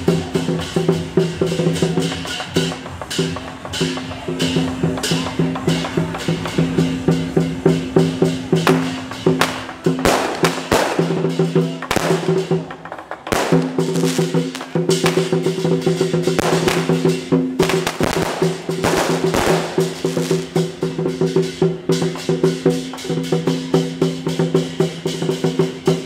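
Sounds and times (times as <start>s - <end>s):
drum gong and cymbals: 0.0s - 26.0s
firecrackers crackling: 0.0s - 26.0s.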